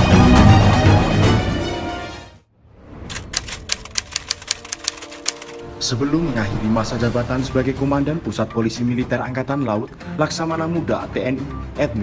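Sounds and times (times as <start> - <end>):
typewriter key clacks: 3.1 - 5.6.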